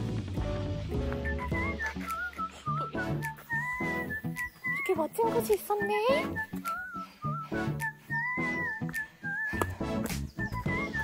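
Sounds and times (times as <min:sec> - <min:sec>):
rhythmic accompaniment: 0:00.0 - 0:11.0
whistle-like lead melody: 0:00.4 - 0:11.0.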